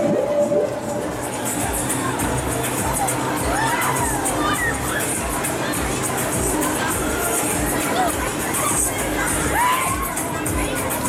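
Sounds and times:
dance music with steady beat: 0.0 - 11.0
riders screaming and shouting: 1.0 - 11.0.

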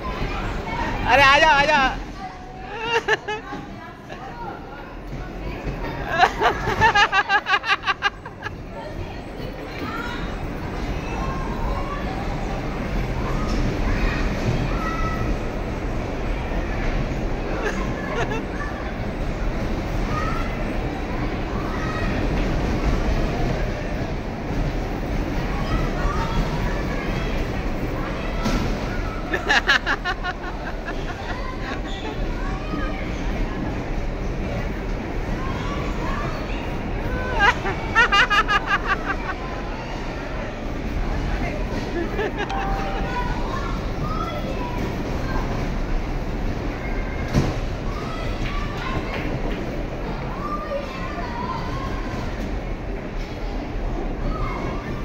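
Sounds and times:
bumper cars rolling rumble: 0.0 - 55.0.

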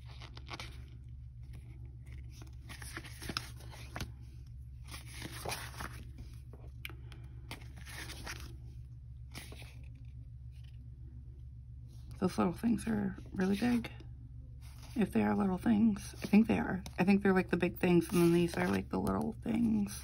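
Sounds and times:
paper sheets rustling: 0.0 - 4.2, 4.8 - 6.6, 7.5 - 8.6, 9.3 - 10.7, 16.0 - 17.0, 18.0 - 20.0
steady low hum: 0.0 - 20.0.

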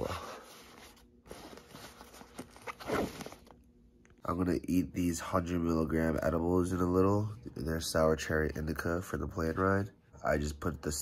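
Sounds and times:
fabric backpack rustling: 0.4 - 3.6.

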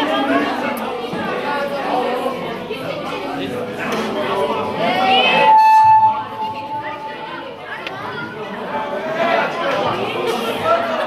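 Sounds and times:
indistinct chatter: 0.0 - 11.0
steady high tone: 4.8 - 7.9.

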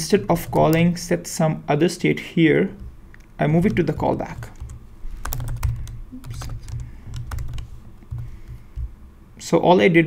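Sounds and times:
keyboard typing clicks: 0.2 - 0.9, 2.8 - 8.9.

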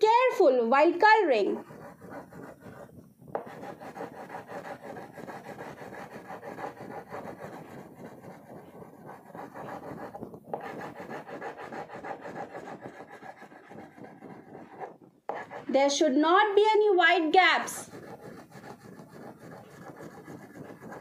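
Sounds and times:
wax crayon scratching on paper: 1.4 - 15.8, 17.6 - 21.0.

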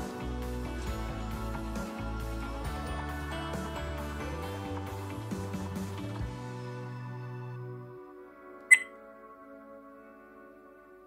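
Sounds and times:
soft background music: 0.0 - 11.0
camcorder electronic beep: 8.7 - 8.9.

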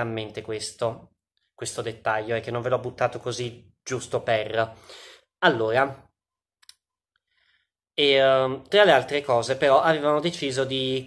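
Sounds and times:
faint breath: 4.8 - 5.3, 7.2 - 7.8.

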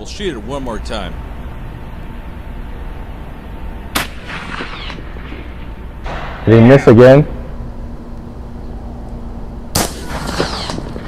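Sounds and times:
shotgun shot: 4.0 - 6.5, 9.8 - 11.0.

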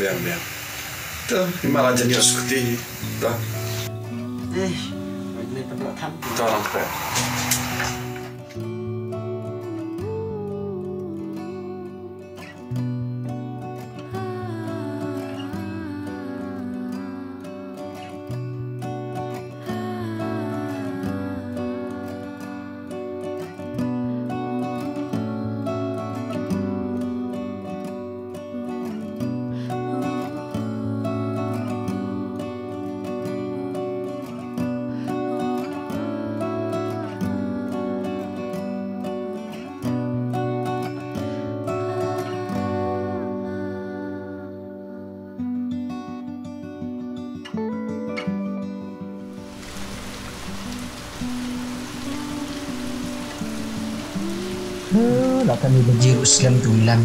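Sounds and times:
acoustic guitar music: 0.0 - 57.0.

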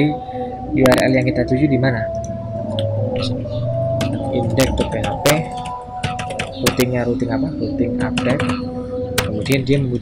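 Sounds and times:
held higher tone: 0.0 - 10.0
low hum: 0.0 - 10.0.

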